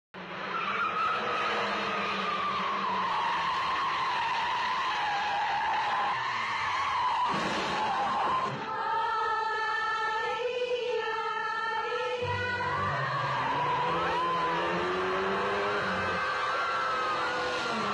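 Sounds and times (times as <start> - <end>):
car tyres screeching: 0.2 - 8.7, 12.2 - 17.9
music: 11.5 - 14.3.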